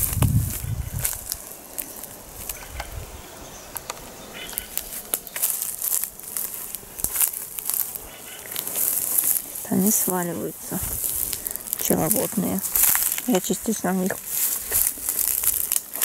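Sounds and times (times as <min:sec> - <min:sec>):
footsteps through cut grass: 0:00.0 - 0:16.0.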